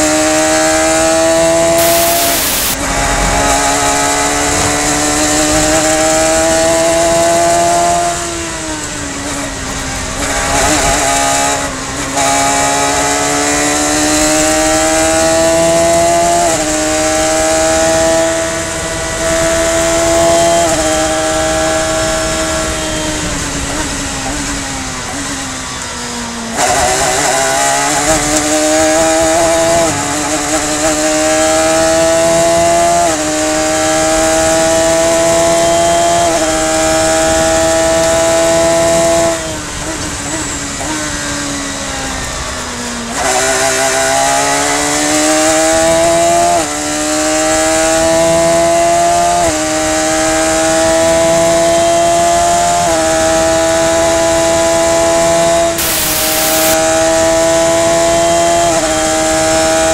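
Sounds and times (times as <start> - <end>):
race car engine revving with upshifts: 0.0 - 41.6, 42.2 - 59.9.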